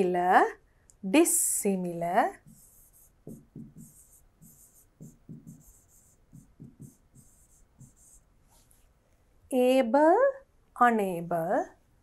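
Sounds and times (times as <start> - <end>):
pen tapping and scratching on screen: 2.4 - 8.3.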